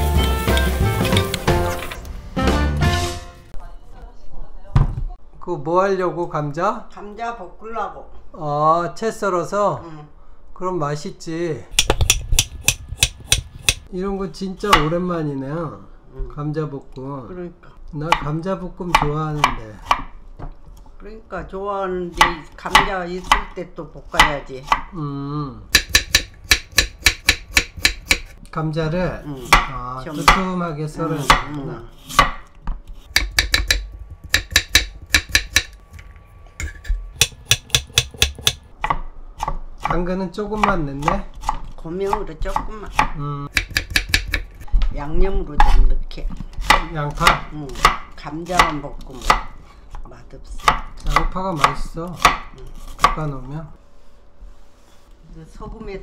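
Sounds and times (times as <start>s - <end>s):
knife cutting vegetables on board: 11.8s - 13.9s, 25.8s - 28.4s, 31.1s - 35.7s, 37.2s - 40.0s, 40.6s - 44.7s.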